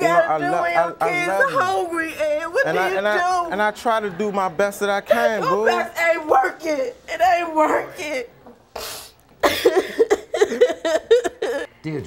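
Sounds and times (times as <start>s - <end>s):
woman crying and laughing: 9.4s - 11.7s.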